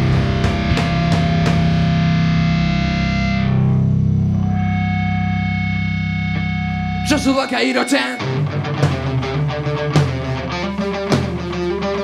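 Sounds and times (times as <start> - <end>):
drum and cymbal hits: 0.0 - 2.1, 8.8 - 11.7
sustained electric guitar chord: 0.0 - 10.8
bass guitar: 0.0 - 12.0
rock band playing live: 0.0 - 12.0.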